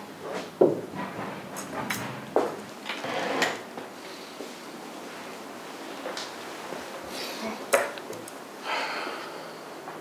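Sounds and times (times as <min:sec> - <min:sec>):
chair scraping across floor: 0:00.2 - 0:03.7.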